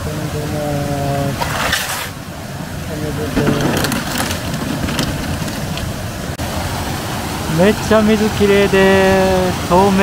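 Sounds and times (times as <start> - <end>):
plastic bottles knocking in crate: 3.4 - 5.9.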